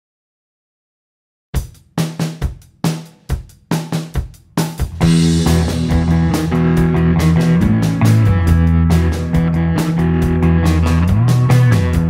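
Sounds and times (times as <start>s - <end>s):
drum kit kick and snare: 1.6s - 12.0s
surf rock band playing: 4.8s - 12.0s.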